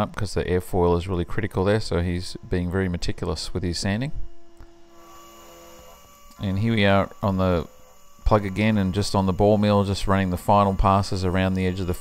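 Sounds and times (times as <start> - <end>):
faint electrical hum: 0.0 - 12.0
thin steady tones: 0.0 - 12.0.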